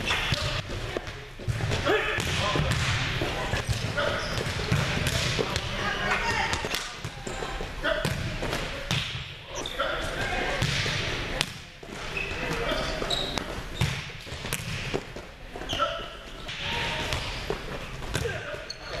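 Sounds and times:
volleyball hits and bounces: 0.0 - 9.3, 10.4 - 15.3, 16.5 - 18.6
players' voices: 0.0 - 19.0.

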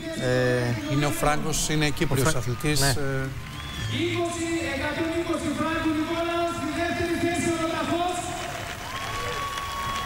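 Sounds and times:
crowd applauding and cheering: 0.7 - 10.0.

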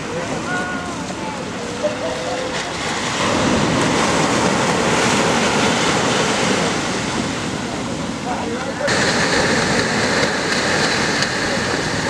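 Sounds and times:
surf washing in shallows: 0.0 - 12.0.

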